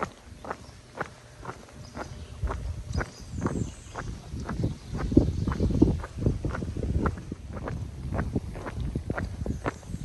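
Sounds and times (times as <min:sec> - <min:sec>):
footsteps on asphalt: 0:00.0 - 0:10.0
low rumble: 0:00.0 - 0:10.0.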